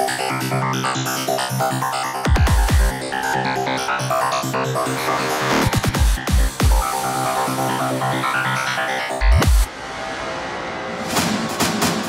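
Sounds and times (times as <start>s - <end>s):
electronic trance music: 0.0s - 12.0s.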